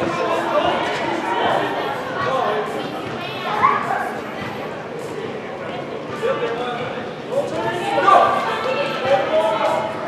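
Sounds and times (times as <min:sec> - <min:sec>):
echoing shouting and chatter: 0:00.0 - 0:10.0.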